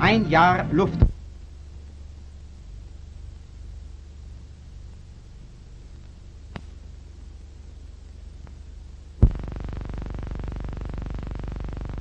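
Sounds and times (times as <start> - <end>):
low hum with rapid buzz: 0.0 - 12.0
loud pop: 9.2 - 9.6.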